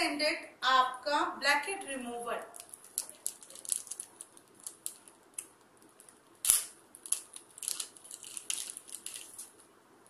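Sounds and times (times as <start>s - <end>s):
plastic packaging handled: 2.3s - 9.8s.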